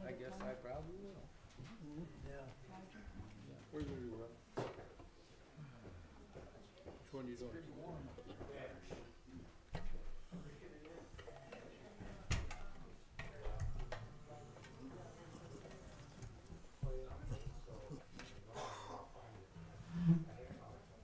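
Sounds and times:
background chatter in hall: 5.2s - 21.0s.

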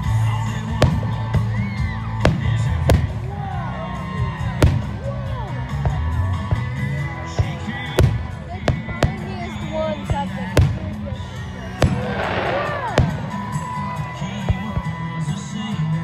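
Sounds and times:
crowd voices: 0.0s - 16.0s
music: 0.0s - 16.0s
firework shells bursting: 11.8s - 14.0s.

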